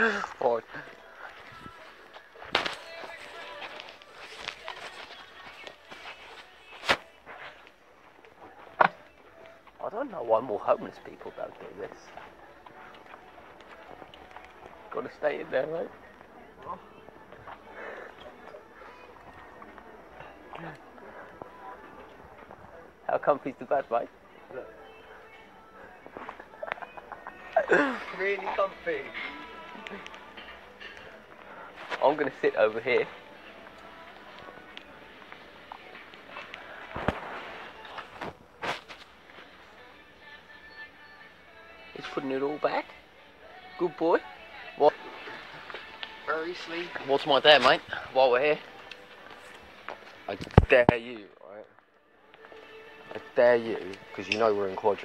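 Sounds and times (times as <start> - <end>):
faint background music: 0.0 - 55.0
faint footsteps: 0.6 - 23.0, 45.0 - 55.0.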